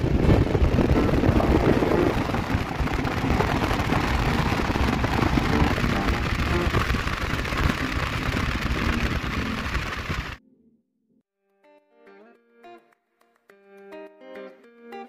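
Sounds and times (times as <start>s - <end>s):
motorcycle engine running: 0.0s - 10.4s
wind buffeting microphone: 0.0s - 10.4s.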